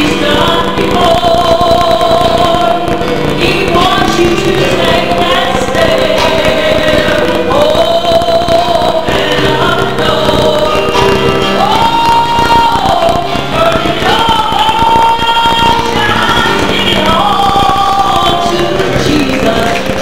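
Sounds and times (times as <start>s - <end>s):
church choir singing: 0.0s - 20.0s
keyboard accompaniment: 0.0s - 20.0s
woman singing gospel: 0.0s - 20.0s.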